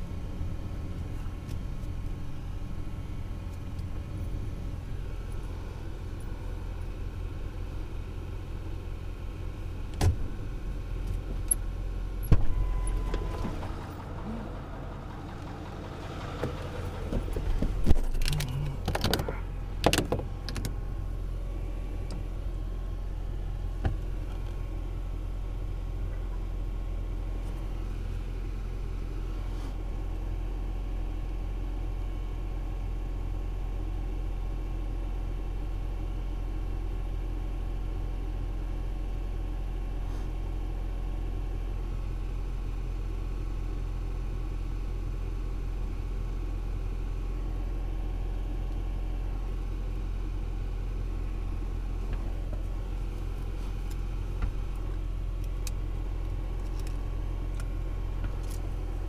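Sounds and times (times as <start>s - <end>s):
road noise: 0.0s - 30.8s, 47.2s - 59.0s
truck engine rumble: 0.0s - 59.0s.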